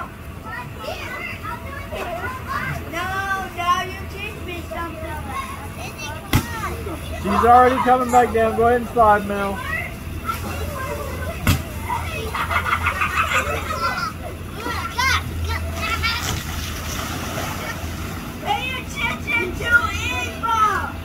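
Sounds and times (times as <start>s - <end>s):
children playing and calling out: 0.0s - 21.0s
low steady hum: 0.0s - 21.0s.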